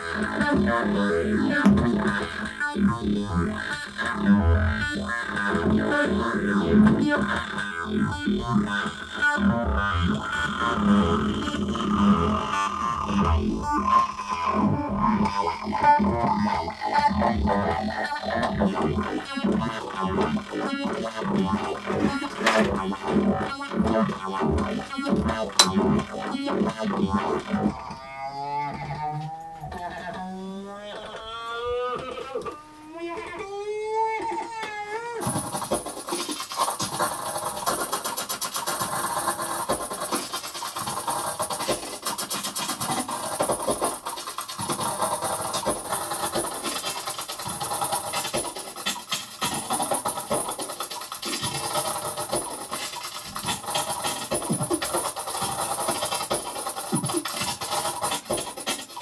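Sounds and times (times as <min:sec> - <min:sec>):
rapid electronic clicks and hiss: 0:00.0 - 0:28.0, 0:35.2 - 0:59.0.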